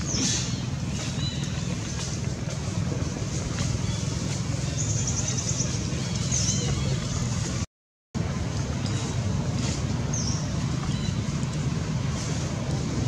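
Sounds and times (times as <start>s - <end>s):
outdoor background rumble: 0.0s - 13.0s.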